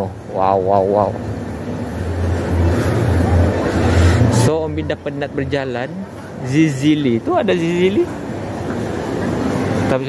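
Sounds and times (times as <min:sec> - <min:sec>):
shopping mall ambience: 0:00.0 - 0:10.0.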